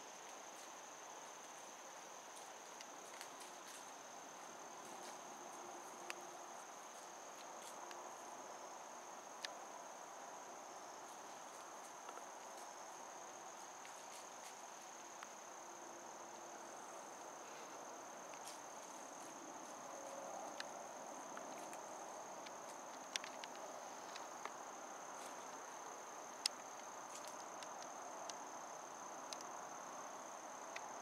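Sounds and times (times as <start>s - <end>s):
high-pitched insect chorus: 0.0s - 31.0s
faint sharp clicks: 29.3s - 29.5s.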